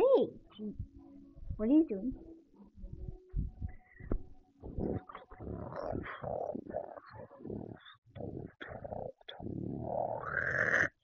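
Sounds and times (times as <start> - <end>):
person growling and gobbling: 4.6 - 11.0.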